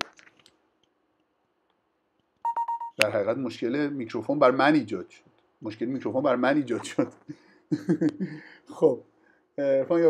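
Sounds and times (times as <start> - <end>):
short high electronic beeps: 2.5 - 3.0.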